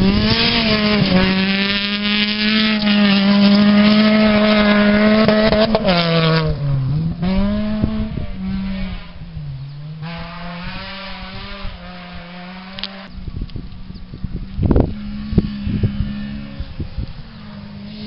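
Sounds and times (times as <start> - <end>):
rally car engine revving: 0.0 - 13.2, 13.9 - 18.0.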